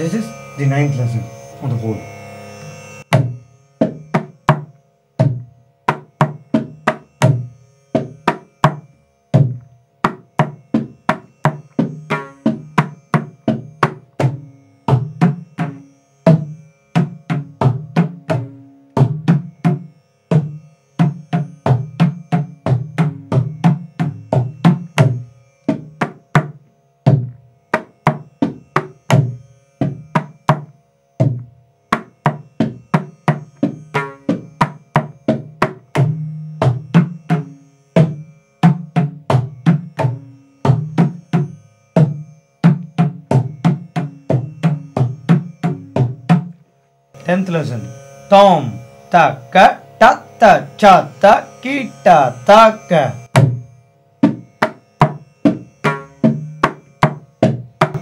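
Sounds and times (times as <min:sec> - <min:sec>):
mridangam drum strokes: 0:02.9 - 0:46.6, 0:47.2 - 0:58.0.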